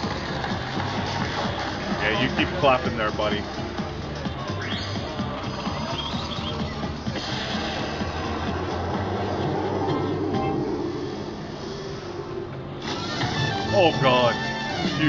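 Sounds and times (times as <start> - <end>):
slot machine electronic music: 0.5 - 11.0, 12.6 - 15.0.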